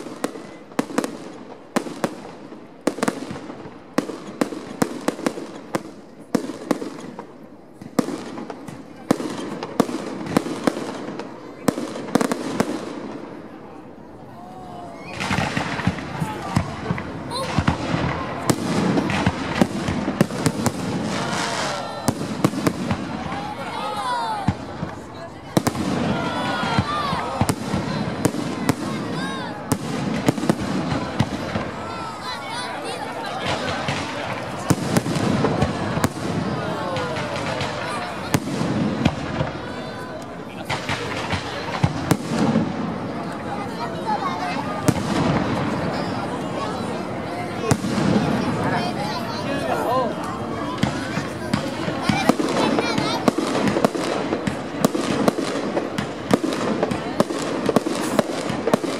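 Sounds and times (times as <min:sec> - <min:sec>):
firework shell bursts and crackling: 0:15.1 - 0:23.7, 0:24.5 - 0:31.9, 0:33.4 - 0:39.6, 0:40.2 - 0:43.4, 0:50.8 - 0:58.9
sharp firework bangs: 0:15.1 - 0:32.0, 0:33.2 - 0:39.7, 0:40.6 - 0:43.2, 0:44.8 - 0:46.2, 0:47.6 - 0:48.9, 0:50.8 - 0:58.9.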